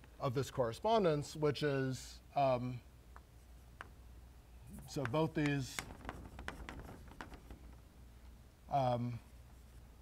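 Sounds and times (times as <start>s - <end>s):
low room hum: 0.0s - 10.0s
chalk on blackboard: 4.8s - 7.7s, 9.2s - 10.0s.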